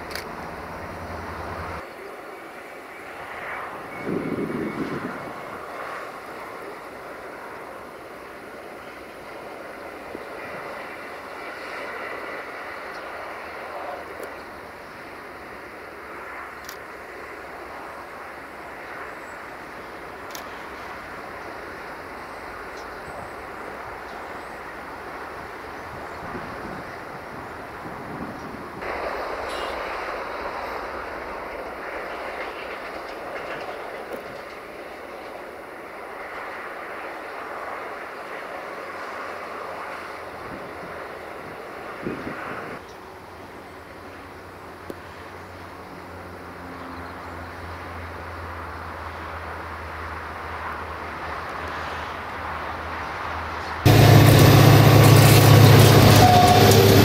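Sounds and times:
train wheels on rails: 0.0 - 43.2, 49.9 - 57.0.

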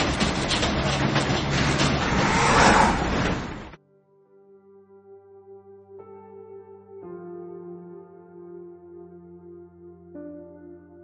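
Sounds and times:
engine rumble: 0.0 - 3.8
broad rushing noise: 1.4 - 3.8.

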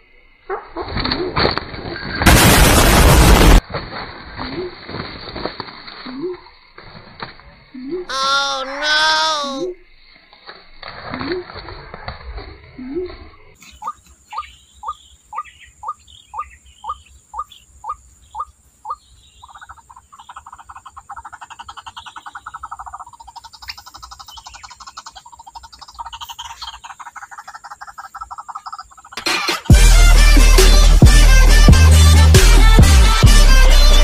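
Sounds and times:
waterhen calling: 7.8 - 9.8, 12.8 - 29.5.

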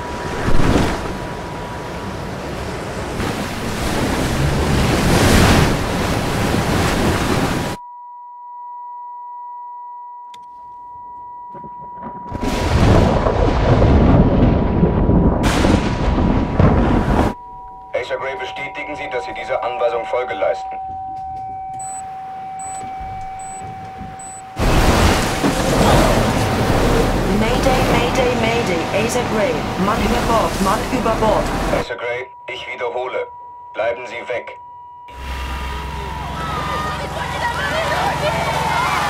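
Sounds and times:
heavy wind and waves: 0.0 - 7.8, 11.7 - 17.4, 21.0 - 31.8, 35.5 - 39.0
steady high drone tone: 34.5 - 37.5.

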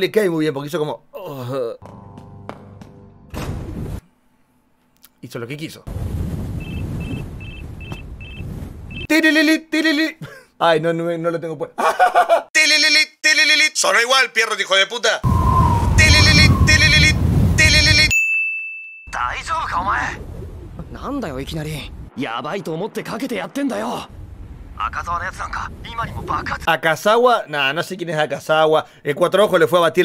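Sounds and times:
low rumbling noise: 15.3 - 18.1, 19.7 - 22.1, 24.1 - 26.7
person speaking: 16.0 - 18.2
high ding: 18.1 - 19.2.

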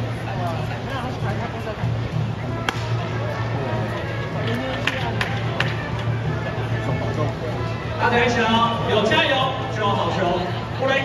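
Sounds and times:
crowd voices: 0.0 - 11.0
music: 0.0 - 11.0.

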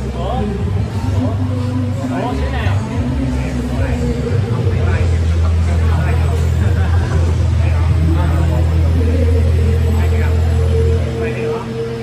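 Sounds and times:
people talking: 0.0 - 12.0
steady higher hum: 0.0 - 12.0.

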